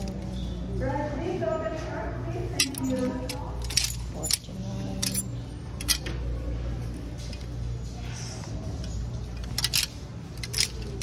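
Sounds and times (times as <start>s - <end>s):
low store hum: 0.0s - 11.0s
plastic hangers clacking on rack: 2.5s - 6.2s, 9.3s - 11.0s.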